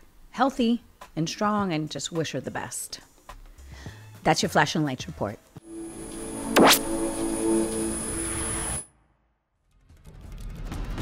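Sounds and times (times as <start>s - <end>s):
sustained synth chord: 5.7s - 8.8s
thin high steady tone: 5.7s - 8.8s.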